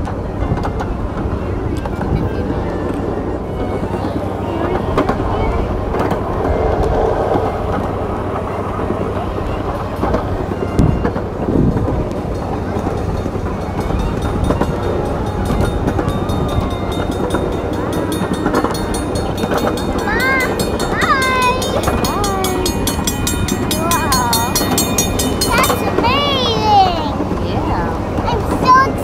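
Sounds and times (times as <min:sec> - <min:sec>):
miniature train rumbling: 0:00.0 - 0:29.0
wheels clicking: 0:07.7 - 0:29.0
children calling out: 0:12.8 - 0:29.0.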